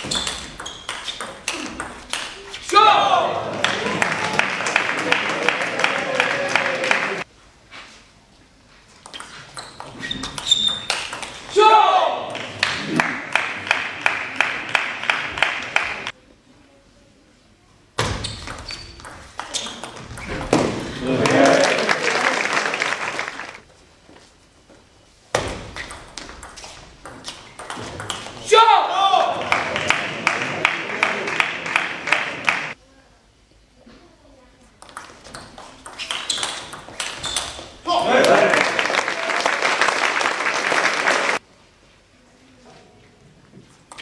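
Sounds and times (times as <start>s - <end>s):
spectators clapping and cheering: 1.5s - 7.3s, 12.2s - 16.1s, 21.0s - 23.7s, 29.1s - 32.8s, 37.9s - 41.4s
loud shout: 2.7s - 7.2s, 11.5s - 12.4s, 28.5s - 29.7s, 37.8s - 39.5s.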